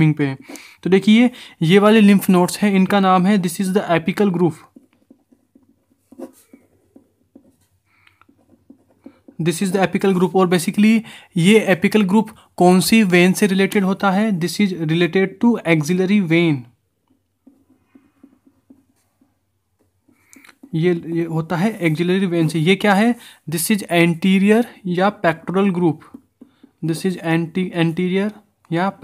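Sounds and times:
pen scratching on paper: 2.0s - 11.0s, 15.8s - 28.1s.

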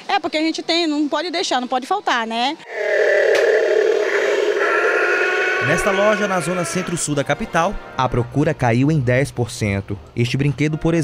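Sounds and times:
electronic toy roar: 2.6s - 7.1s.

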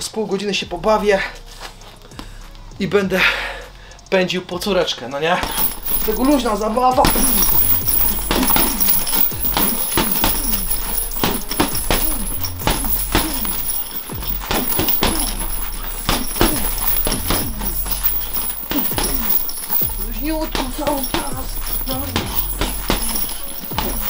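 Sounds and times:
background music with bass line: 0.6s - 24.0s
punches on punching bag: 5.4s - 24.0s.

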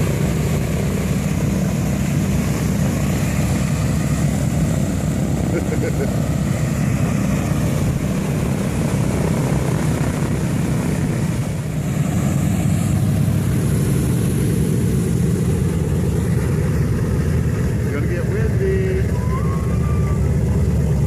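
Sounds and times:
propeller plane engines rumbling: 0.0s - 21.0s.

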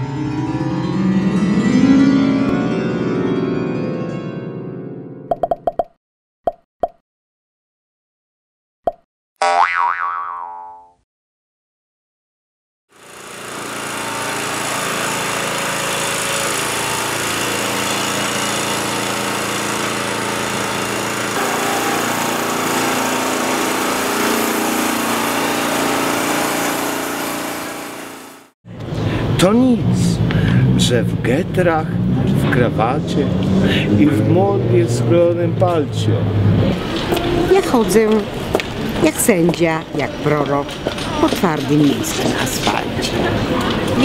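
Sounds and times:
city street traffic noise: 28.7s - 44.0s.

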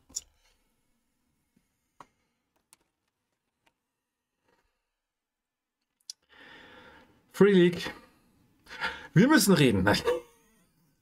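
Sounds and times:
man breathing in: 6.2s - 7.2s.

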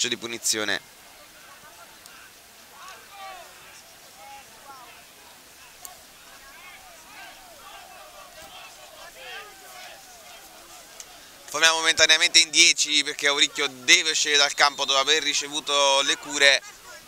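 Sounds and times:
distant players shouting: 1.4s - 17.0s.

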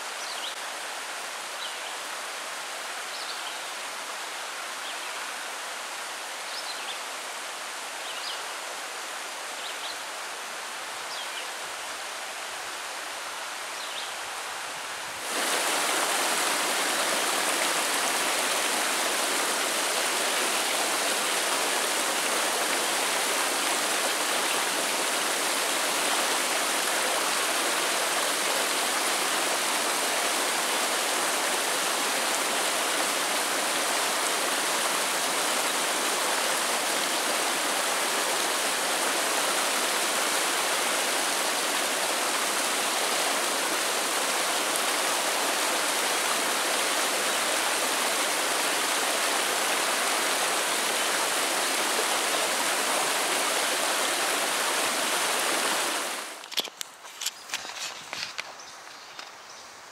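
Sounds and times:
river rushing over rapids: 0.0s - 56.6s.

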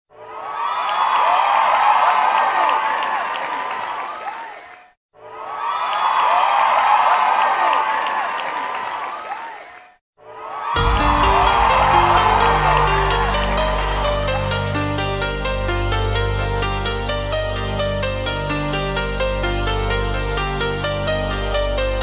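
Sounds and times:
crowd cheering and screaming: 0.1s - 4.6s, 5.2s - 9.7s, 10.3s - 15.6s.

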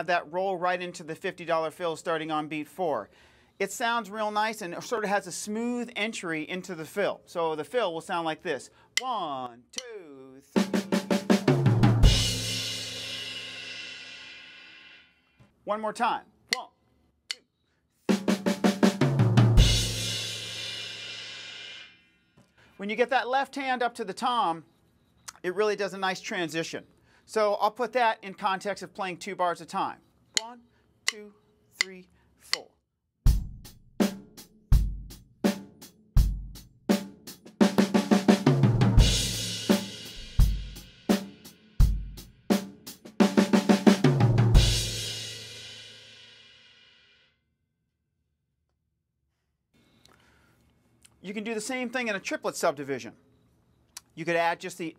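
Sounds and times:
tom fill: 6.3s - 24.6s
bass drum: 10.6s - 13.1s, 18.2s - 20.5s, 33.3s - 35.3s, 36.2s - 36.7s, 37.8s - 41.0s, 41.8s - 42.4s, 43.3s - 45.2s
snare drum roll: 10.6s - 13.6s, 37.6s - 41.3s, 43.2s - 44.9s
crash cymbal: 12.1s - 15.2s, 19.7s - 22.2s, 44.8s - 47.3s.

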